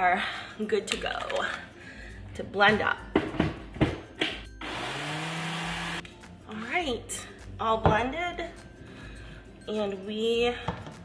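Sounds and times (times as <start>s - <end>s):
blender motor running: 4.6s - 6.0s.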